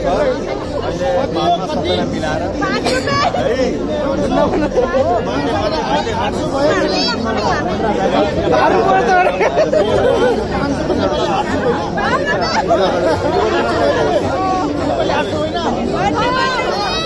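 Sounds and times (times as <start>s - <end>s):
crowd babble: 0.0s - 17.0s.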